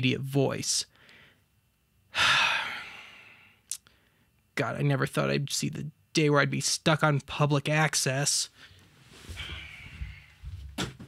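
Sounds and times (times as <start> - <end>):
man sighing: 2.1 - 3.5, 9.3 - 10.4.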